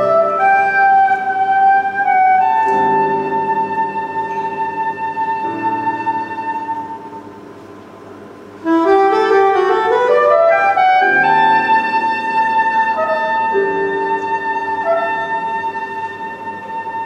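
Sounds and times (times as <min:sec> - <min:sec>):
soprano saxophone: 0:00.0 - 0:07.3, 0:08.6 - 0:17.0
grand piano chords: 0:00.0 - 0:17.0.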